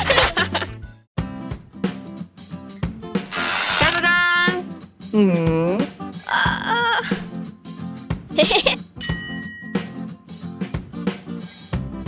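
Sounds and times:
cartoon background music: 3.1 - 7.5, 8.3 - 10.2
character's wordless vocal sounds: 5.1 - 7.3.

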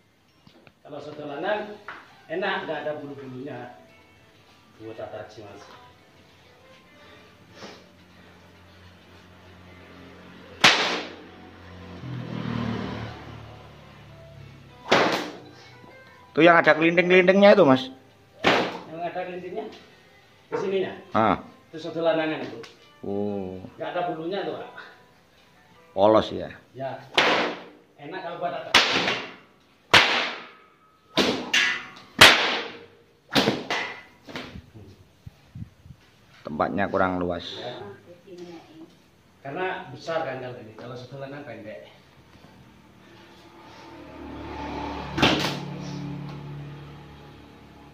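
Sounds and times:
whip cracking: 10.6 - 11.2, 14.9 - 15.4, 29.9 - 30.5, 31.2 - 34.5, 45.2 - 45.8.

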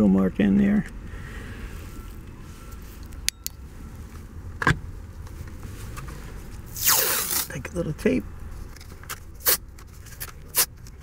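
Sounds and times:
tape pulled and torn off roll: 6.7 - 7.6, 8.7 - 11.0.

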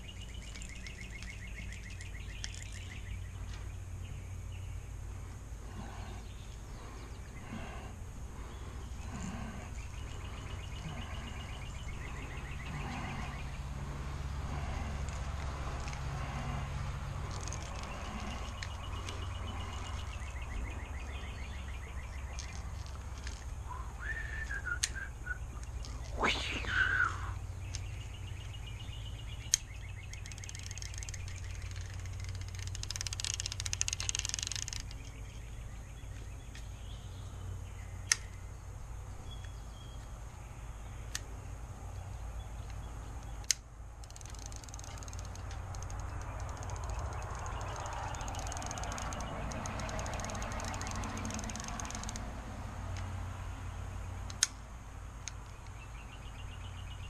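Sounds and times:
steady low rumble: 0.0 - 33.0
bird calling: 0.0 - 38.5, 42.4 - 52.3
fishing reel clicks: 29.5 - 35.0, 43.4 - 52.3.

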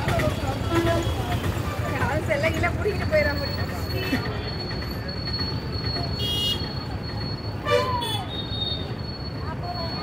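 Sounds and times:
low traffic rumble: 0.0 - 10.0
vehicle horn toot: 6.2 - 6.7.

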